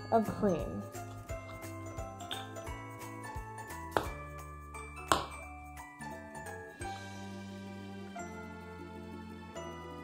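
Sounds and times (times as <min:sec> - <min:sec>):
background music with bell-like tones: 0:00.0 - 0:10.0
sharp knocks on countertop: 0:03.9 - 0:04.2, 0:05.0 - 0:05.4.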